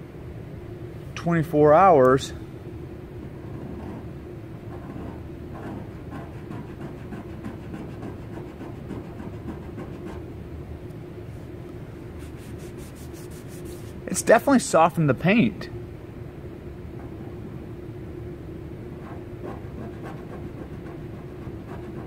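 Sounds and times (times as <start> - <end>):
steady background hum: 0.0 - 22.0
fingernail scratching car paint: 3.3 - 10.2, 12.2 - 14.0, 19.0 - 22.0.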